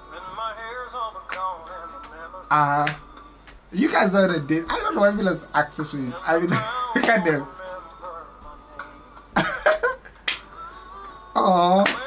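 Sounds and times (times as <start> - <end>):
a cappella singing: 0.0 - 12.0
finger snaps: 1.3 - 2.2, 2.8 - 3.6, 10.2 - 11.2, 11.8 - 12.0.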